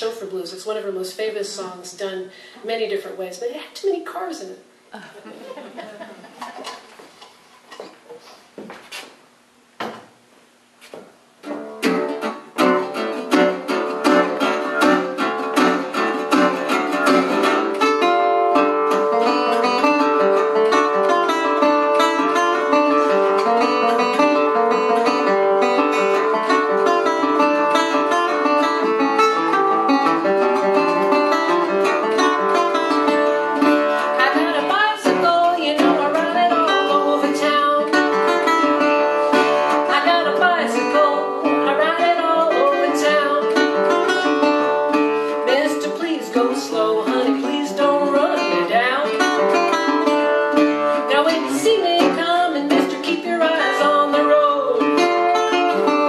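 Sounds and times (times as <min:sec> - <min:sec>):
fingerstyle resonator guitar blues: 0:11.4 - 0:56.0.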